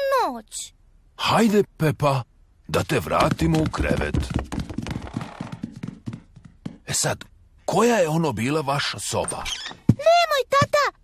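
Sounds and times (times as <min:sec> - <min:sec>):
cartoon footsteps light taps: 0:02.7 - 0:07.1, 0:09.8 - 0:11.0.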